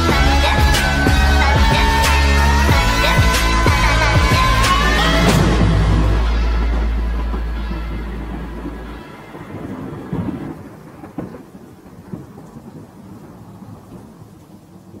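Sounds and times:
deep bass note: 0.0 - 9.1
music chord: 0.0 - 10.4
rain: 0.0 - 15.0
rumbling thunder with cracks: 0.0 - 15.0.

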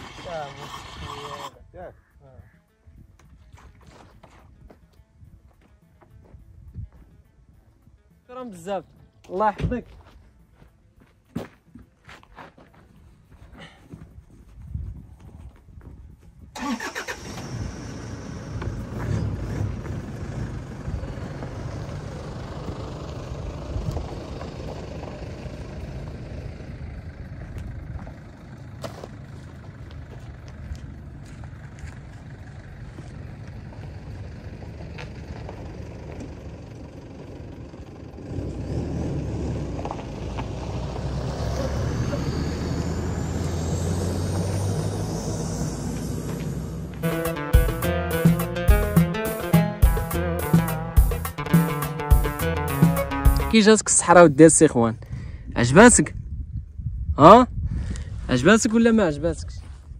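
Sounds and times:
car engine starting and running: 0.0 - 1.6, 16.5 - 54.4
rising engine whine: 16.6 - 54.2.

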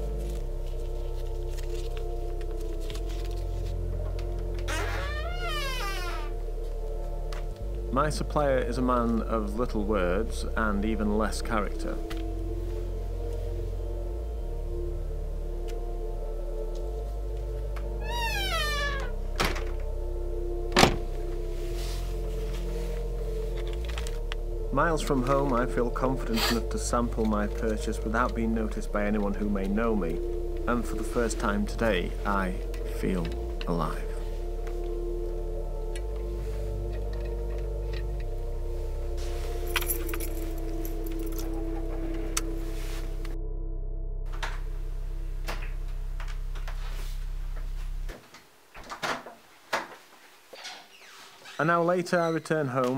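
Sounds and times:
background music: 0.0 - 48.7
keys jangling: 39.7 - 41.9.

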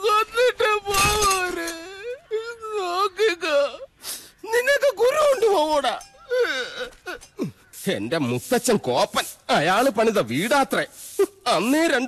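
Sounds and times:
man wailing in tears: 6.3 - 7.6.

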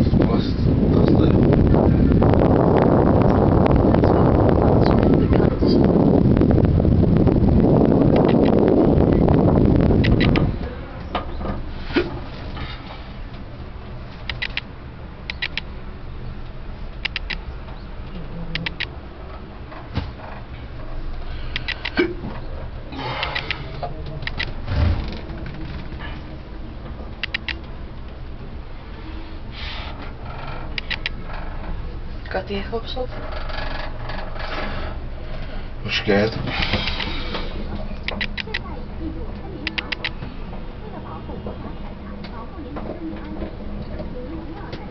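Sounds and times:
cabin hum: 0.0 - 44.9
cable car mechanical whirring: 0.0 - 44.9
wind rushing over microphone: 0.0 - 44.9
light clicks: 14.2 - 14.7, 15.3 - 15.7, 17.0 - 17.4, 21.5 - 22.0, 27.2 - 27.7, 30.8 - 31.2.

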